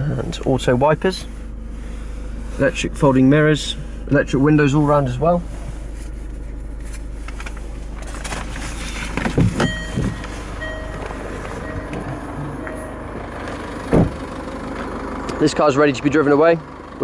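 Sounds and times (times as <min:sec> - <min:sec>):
diesel engine idling: 0:00.0 - 0:17.0
car door opening: 0:08.0 - 0:14.3
car door shutting: 0:08.0 - 0:14.3
electronic warning chimes: 0:09.6 - 0:13.3.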